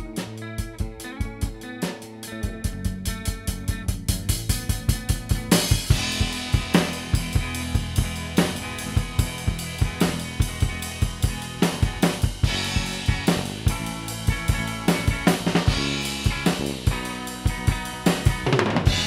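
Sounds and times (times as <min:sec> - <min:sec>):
drum kit beat: 0:00.0 - 0:19.0
rock band playing: 0:00.0 - 0:19.0.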